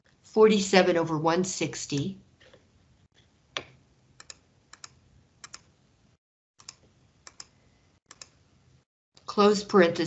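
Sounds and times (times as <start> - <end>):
computer key clicks: 6.6 - 7.5, 8.1 - 8.4.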